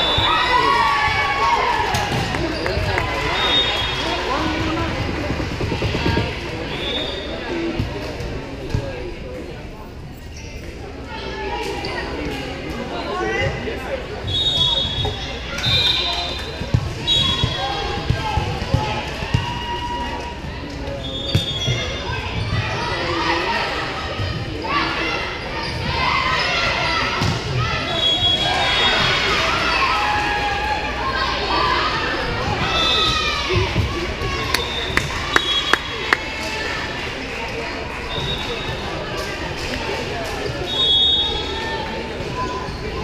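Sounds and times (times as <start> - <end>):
murmur of voices: 0.0 - 43.0
shoe squeaks: 34.5 - 36.1.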